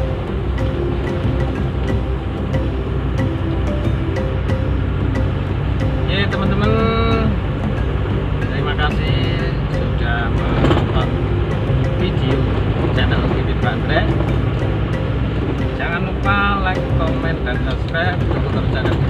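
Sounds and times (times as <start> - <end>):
background music: 0.0 - 19.0
engine and road rumble: 0.0 - 19.0
person speaking: 6.0 - 7.5, 8.4 - 11.3, 11.9 - 14.3.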